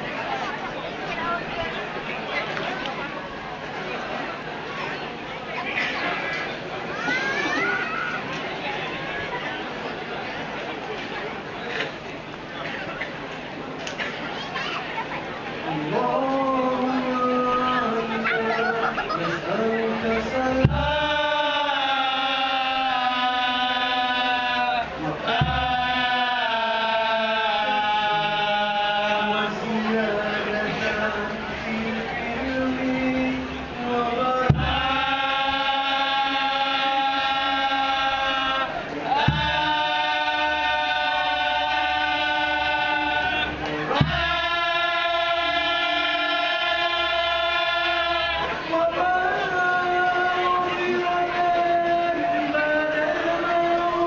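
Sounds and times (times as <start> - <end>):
male chorus singing: 15.6 - 54.0
men chanting in unison: 15.7 - 54.0.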